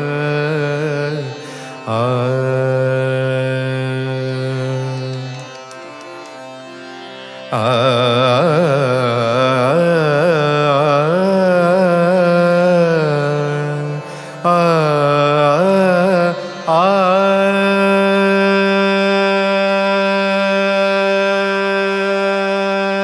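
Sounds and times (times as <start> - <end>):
person singing ornamented phrases: 0.0 - 5.7, 7.5 - 23.0.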